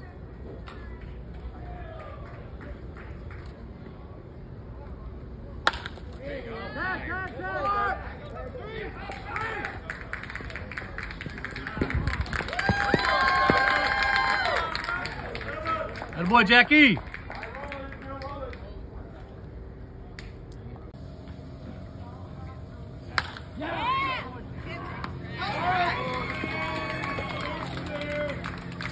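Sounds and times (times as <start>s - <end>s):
bat hitting baseball: 5.6s - 6.1s, 23.1s - 23.5s
spectators shouting and cheering: 11.4s - 17.0s, 23.6s - 28.9s.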